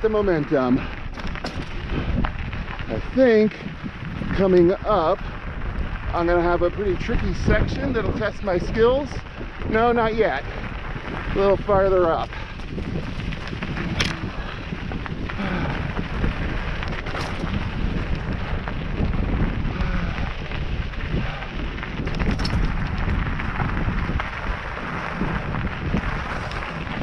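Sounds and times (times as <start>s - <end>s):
bike tyres crunching on gravel: 0.0s - 27.0s
wind on microphone: 0.0s - 27.0s
bike knocking over rocks: 0.4s - 6.1s, 9.2s - 27.0s.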